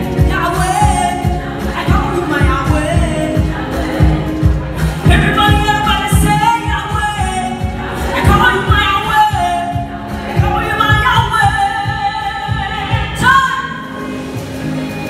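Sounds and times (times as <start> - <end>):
woman singing gospel: 0.0 - 14.0
amplified backing music with drums: 0.0 - 15.0.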